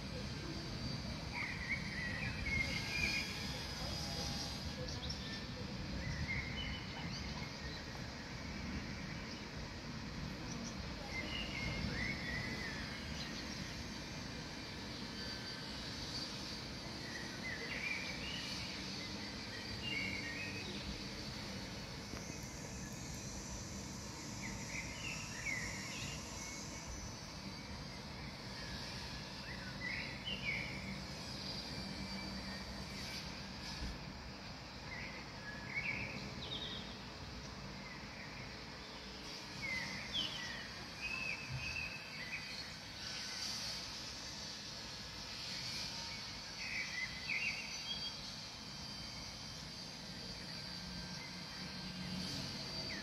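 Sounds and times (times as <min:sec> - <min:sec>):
steady background hiss: 0:00.0 - 0:53.0.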